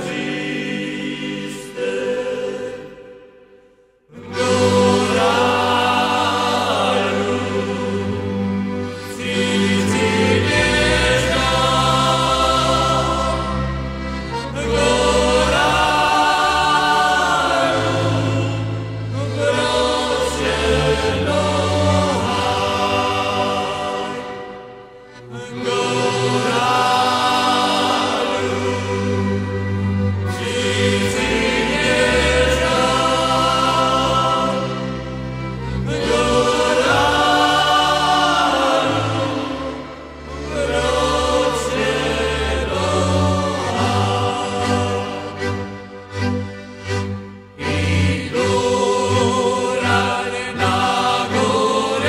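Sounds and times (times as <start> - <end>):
choir singing held notes: 0.0 - 52.0.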